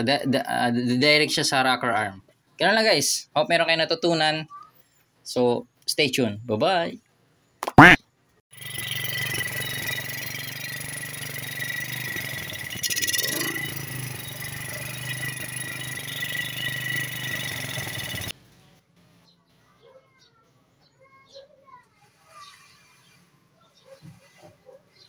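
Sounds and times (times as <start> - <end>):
motorcycle engine idling: 8.5 - 18.3.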